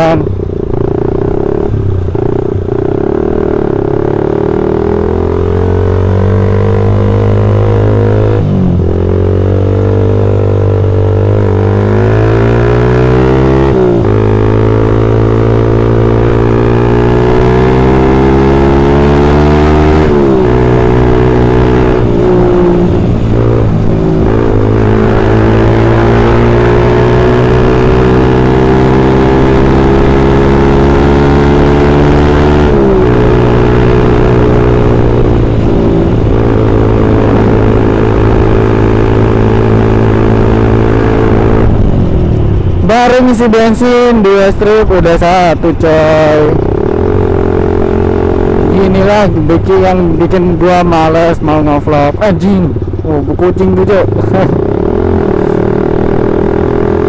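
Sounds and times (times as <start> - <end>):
motorcycle engine accelerating: 0.0 - 57.0.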